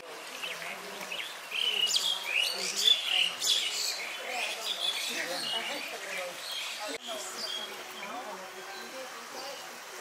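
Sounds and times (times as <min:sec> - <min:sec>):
small birds chirping: 0:00.2 - 0:10.0.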